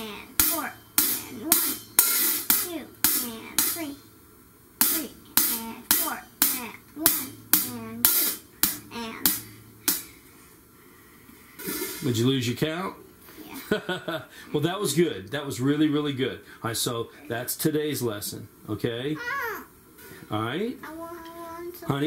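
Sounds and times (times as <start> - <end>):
person counting: 0.0 - 1.9, 2.5 - 4.1, 4.8 - 9.6
closed hi-hat strokes: 0.0 - 12.6.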